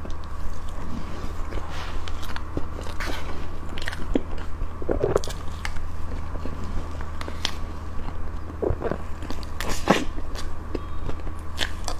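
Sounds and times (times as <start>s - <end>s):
mouth chewing cake: 0.0s - 11.9s.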